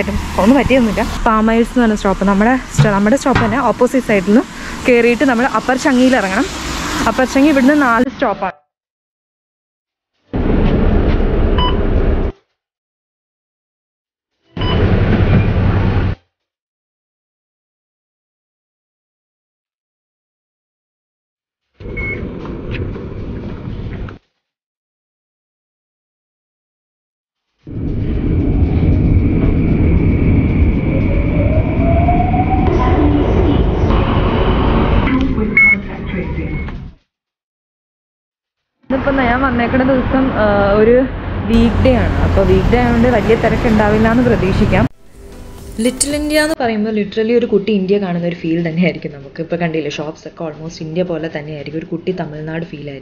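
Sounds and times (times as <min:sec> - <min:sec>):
low rumbling noise: 0:00.0 - 0:08.0, 0:10.3 - 0:12.3, 0:27.7 - 0:36.6, 0:38.9 - 0:46.6
whine rising in pitch: 0:00.0 - 0:08.1, 0:27.7 - 0:35.5
card reader beep: 0:21.9 - 0:22.2.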